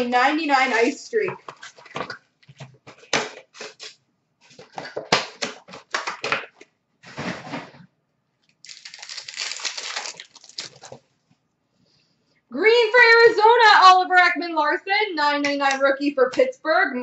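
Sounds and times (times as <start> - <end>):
foil wrappers crinkling: 8.6 - 11.0.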